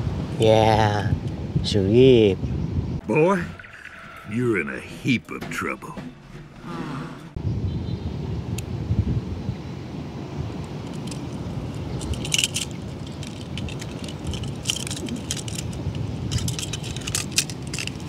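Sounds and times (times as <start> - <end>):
toy cars clinking together: 12.0 - 18.0.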